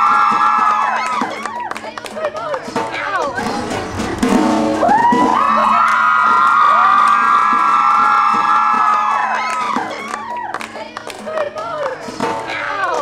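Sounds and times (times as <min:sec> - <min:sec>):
crowd of fans screaming: 0:00.0 - 0:01.8, 0:03.5 - 0:10.6.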